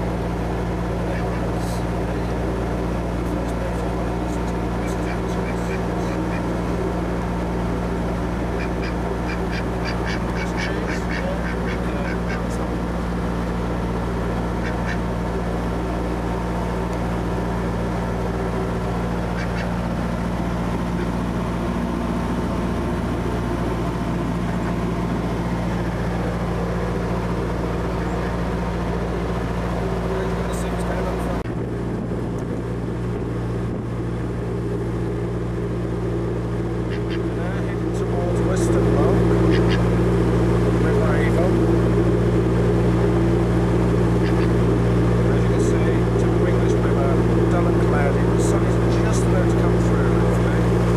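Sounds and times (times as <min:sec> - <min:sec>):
boat engine running: 0:00.0 - 0:50.9
duck quacking: 0:04.5 - 0:06.6, 0:08.4 - 0:12.7, 0:14.5 - 0:15.1, 0:19.3 - 0:19.8, 0:36.9 - 0:37.4, 0:39.4 - 0:40.0, 0:44.2 - 0:44.6.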